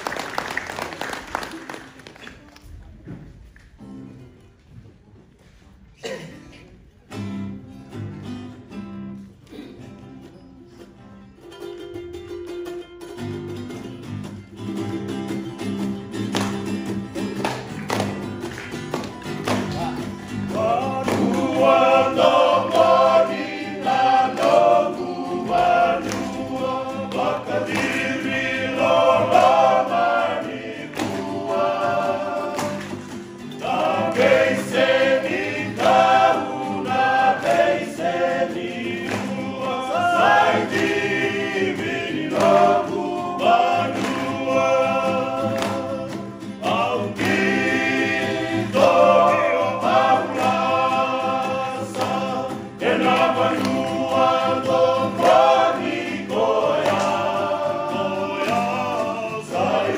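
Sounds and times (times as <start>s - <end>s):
ukulele: 6.0s - 59.9s
strummed acoustic guitars: 6.1s - 59.9s
male vocal group singing in harmony: 20.0s - 59.9s.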